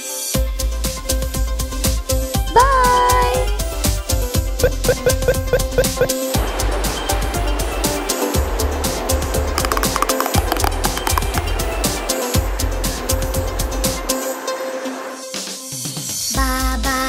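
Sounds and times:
instrumental music with heavy bass: 4.4 - 6.2, 9.6 - 11.6.

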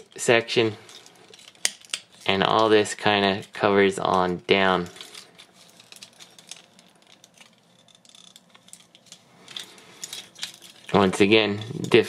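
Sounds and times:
plastic toy parts clicking: 0.9 - 2.7, 4.8 - 11.0.

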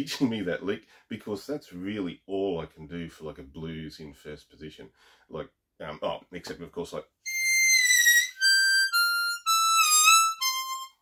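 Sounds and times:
harmonica blues lick: 7.3 - 11.0.

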